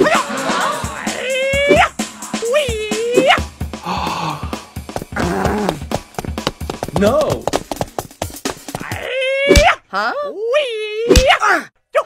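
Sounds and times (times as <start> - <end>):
cartoon music with clicking beat: 4.8 - 9.0.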